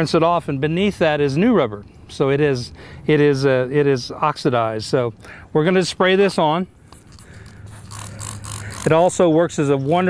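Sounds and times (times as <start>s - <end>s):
spray bottle hissing sprays: 6.9s - 9.0s.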